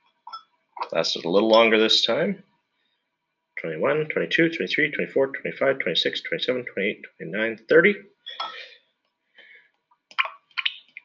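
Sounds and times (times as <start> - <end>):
glass rod clinking on beaker: 0.3 - 0.9, 8.3 - 8.7.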